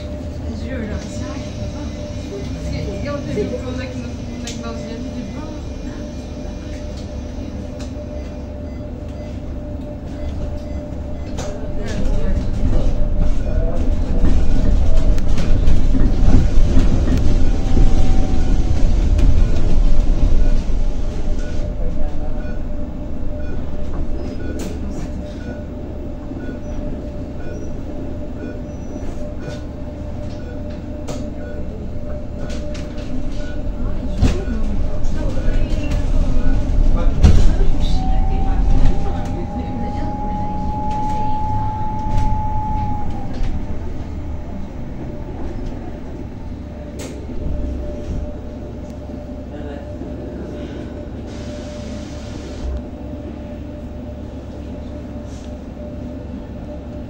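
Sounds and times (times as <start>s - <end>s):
bus body rattles and clicks: 9.8s - 22.3s, 26.3s - 38.0s.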